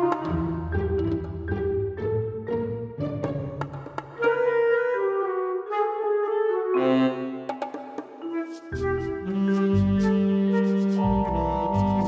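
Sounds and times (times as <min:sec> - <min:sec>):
woodwind melody: 0:00.0 - 0:01.1, 0:04.1 - 0:12.0.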